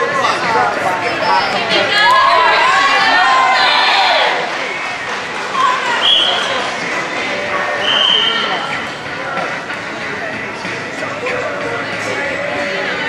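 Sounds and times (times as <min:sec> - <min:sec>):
people shouting: 0:01.5 - 0:04.5.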